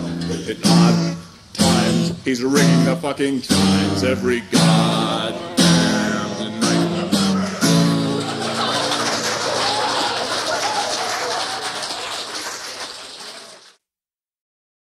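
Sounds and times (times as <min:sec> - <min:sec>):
strummed acoustic guitar: 0:00.0 - 0:09.0
person singing: 0:00.0 - 0:09.2
audience applause: 0:07.4 - 0:13.8.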